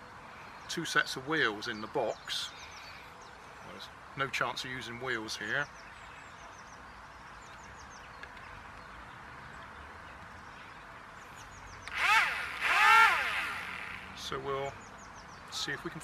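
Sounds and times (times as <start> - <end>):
electric motors and propellers revving: 11.8 - 14.3.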